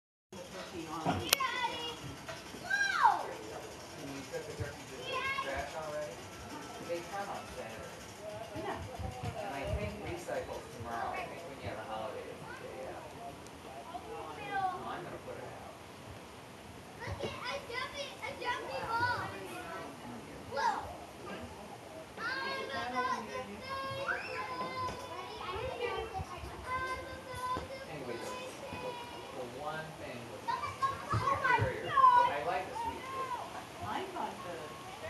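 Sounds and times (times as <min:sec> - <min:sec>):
children chattering and calling: 0:00.4 - 0:15.8, 0:16.8 - 0:35.0
children shouting: 0:01.4 - 0:03.3, 0:22.2 - 0:29.4, 0:30.5 - 0:33.7
steady background hiss: 0:09.3 - 0:35.0.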